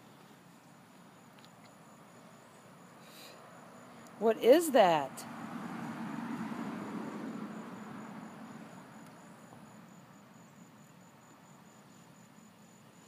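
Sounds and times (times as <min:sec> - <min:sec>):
cricket chirping: 0:00.0 - 0:13.0.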